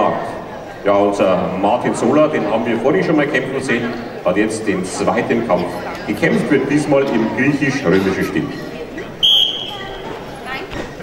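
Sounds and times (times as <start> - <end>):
referee's whistle blast: 9.2 - 10.0.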